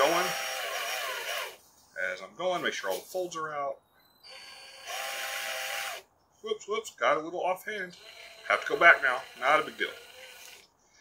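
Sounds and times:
cordless drill whining: 0:00.0 - 0:01.6, 0:04.2 - 0:06.0, 0:07.9 - 0:10.7.

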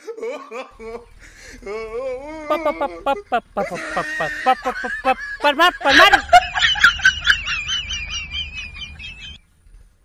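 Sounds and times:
high-pitched quavering giggle: 0:00.8 - 0:09.4.

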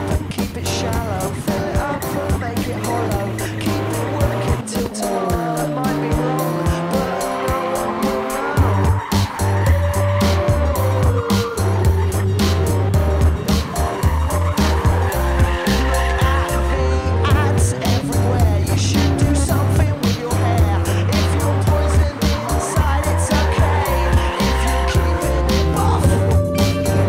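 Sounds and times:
backing music with steady beat: 0:00.0 - 0:27.0
car engine revving: 0:00.0 - 0:27.0
tyres squealing: 0:00.0 - 0:27.0.

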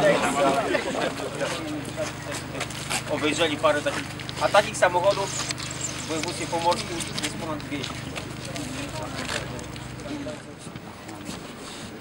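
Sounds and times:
steady low hum: 0:00.0 - 0:12.0
man speaking: 0:06.1 - 0:10.3.

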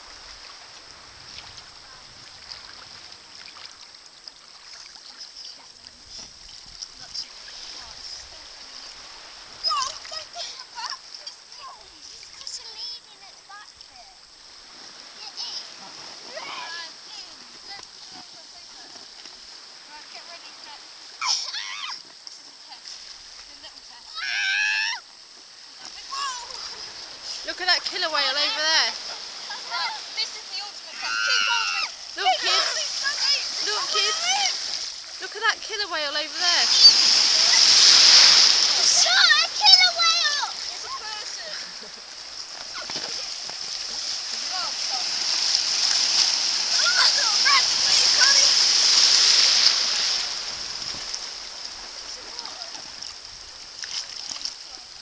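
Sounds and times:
shallow water splashing: 0:00.0 - 0:55.0
child shouting: 0:09.6 - 0:10.9, 0:24.1 - 0:25.0, 0:29.5 - 0:34.6, 0:38.8 - 0:41.6, 0:46.7 - 0:48.7
children calling out: 0:09.6 - 0:11.9, 0:21.2 - 0:22.1, 0:24.0 - 0:25.1, 0:28.1 - 0:34.9, 0:35.9 - 0:41.9, 0:44.0 - 0:50.6
child squealing: 0:21.2 - 0:22.0, 0:24.1 - 0:25.0, 0:30.9 - 0:33.3.

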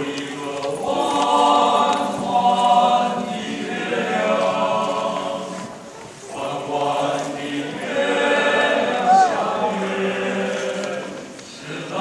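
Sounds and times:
men's choir singing in harmony: 0:00.0 - 0:12.0.

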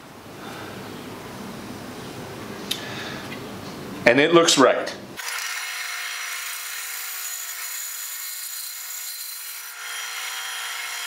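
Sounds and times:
low workshop background noise: 0:00.0 - 0:11.0.

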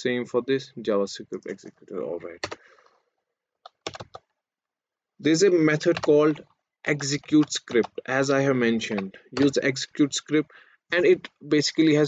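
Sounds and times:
keyboard keystrokes clicking: 0:03.6 - 0:04.2, 0:08.8 - 0:09.6.

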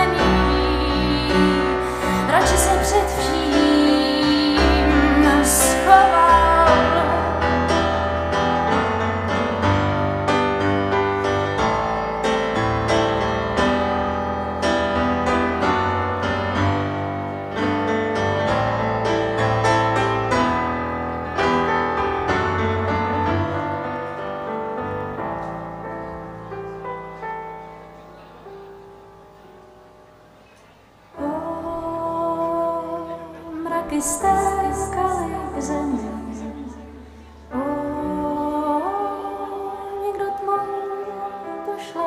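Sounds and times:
slow piano chords and melody: 0:00.0 - 0:42.0.

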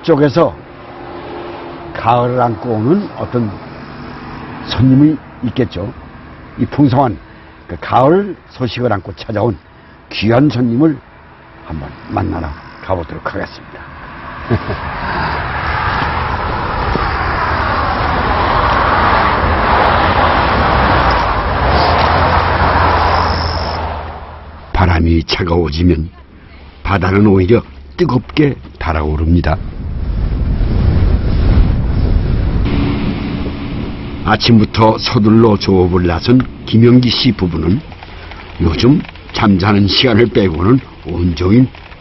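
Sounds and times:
boat engine hum: 0:00.0 - 0:42.0
wind buffeting microphone: 0:14.6 - 0:24.0, 0:28.5 - 0:42.0
waves: 0:25.4 - 0:39.2
wind rushing across grass: 0:29.4 - 0:34.3.

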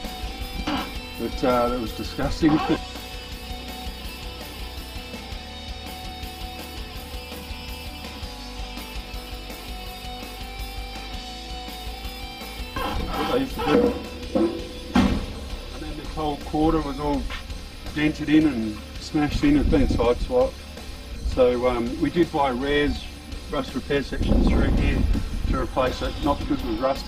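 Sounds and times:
background music with guitar: 0:00.0 - 0:27.0
man speaking: 0:01.3 - 0:02.8, 0:12.9 - 0:14.0, 0:15.7 - 0:17.4.

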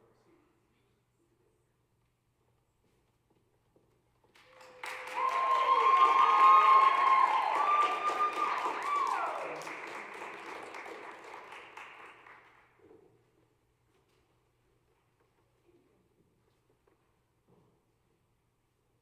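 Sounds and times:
audience applauding: 0:04.3 - 0:12.7.

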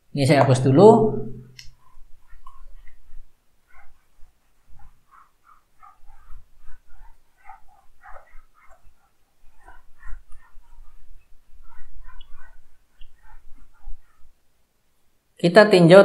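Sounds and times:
eraser squeaking on whiteboard: 0:01.6 - 0:14.4.

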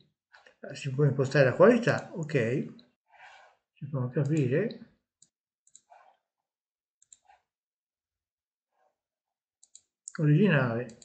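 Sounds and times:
computer mouse clicks: 0:04.2 - 0:06.2, 0:07.0 - 0:07.5, 0:09.6 - 0:10.2, 0:10.8 - 0:11.0.

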